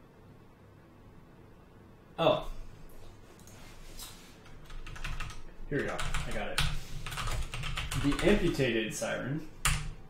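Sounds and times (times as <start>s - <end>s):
typing on computer keyboard: 4.5s - 8.6s, 9.6s - 10.0s
man talking: 5.7s - 6.7s, 8.0s - 9.5s.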